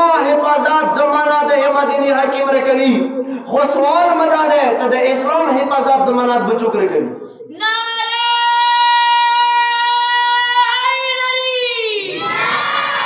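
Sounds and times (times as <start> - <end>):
many voices chanting response: 12.0 - 13.0.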